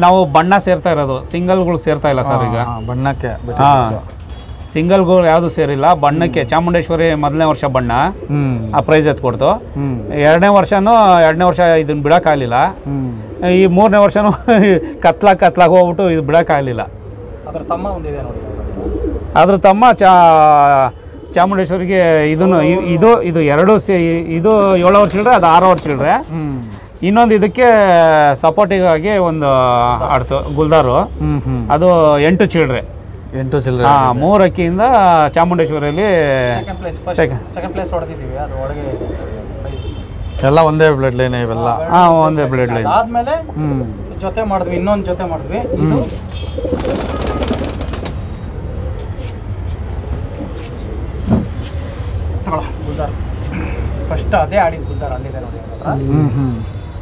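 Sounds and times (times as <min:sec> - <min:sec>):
man talking: 0:00.0 - 0:04.1, 0:04.8 - 0:18.4, 0:19.4 - 0:39.2, 0:40.3 - 0:46.2, 0:52.5 - 0:56.8
pigeon flapping its wings: 0:24.5 - 0:26.0, 0:46.6 - 0:48.3.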